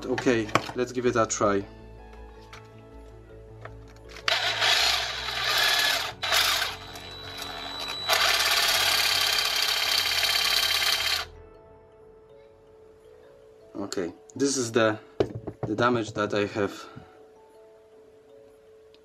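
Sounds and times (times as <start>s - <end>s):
faint background music: 0.0s - 19.0s
sabre saw cutting steel: 4.3s - 6.8s.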